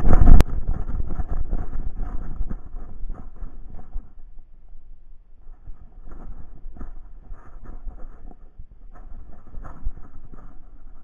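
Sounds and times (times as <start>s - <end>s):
camera jostling and rubbing: 0.0s - 4.2s, 5.5s - 11.0s
wind on microphone: 0.0s - 11.0s
steps on stony path: 5.4s - 11.0s.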